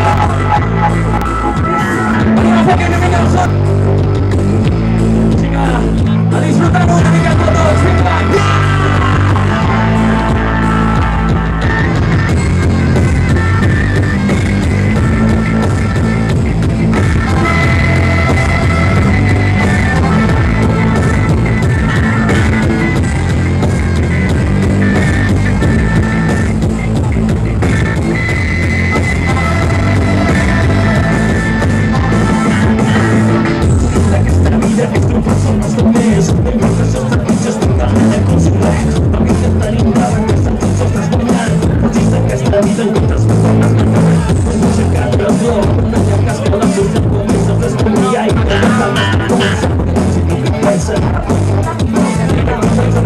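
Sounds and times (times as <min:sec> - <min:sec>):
drums: 0:00.0 - 0:53.0
electric bass: 0:00.0 - 0:53.0
flute-like wind instrument melody: 0:16.9 - 0:24.3.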